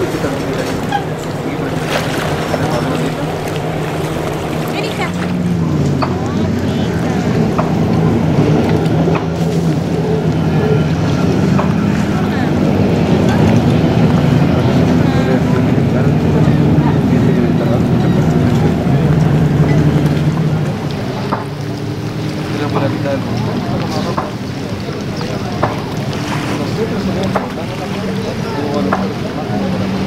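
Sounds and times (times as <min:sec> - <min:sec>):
motorboat engine droning: 0:00.0 - 0:30.0.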